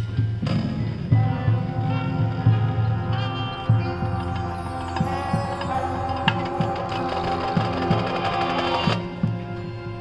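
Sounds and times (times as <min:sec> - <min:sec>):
marching band held chord: 0:00.3 - 0:10.0.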